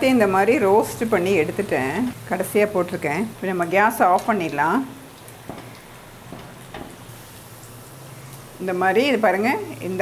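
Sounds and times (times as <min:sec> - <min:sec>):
hot oil sizzling: 0:00.0 - 0:10.0.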